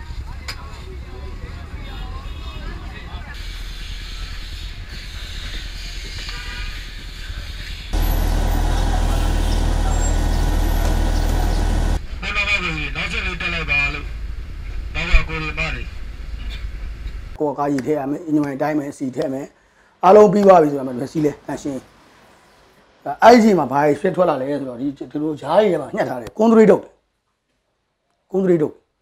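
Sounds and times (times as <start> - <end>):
street noise: 0.0 - 12.0
bus engines idling: 8.0 - 12.0
loud bus engine rumble: 8.0 - 12.0
people's voices: 8.0 - 12.0.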